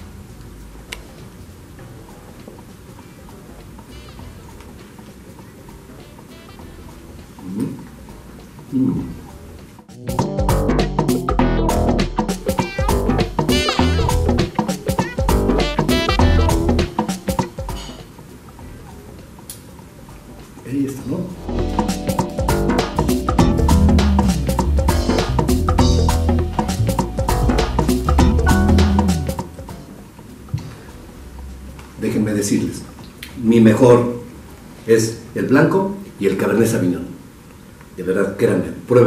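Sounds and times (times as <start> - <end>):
low room noise: 0.0 - 11.3, 12.0 - 39.0
quiet background music: 0.0 - 37.0.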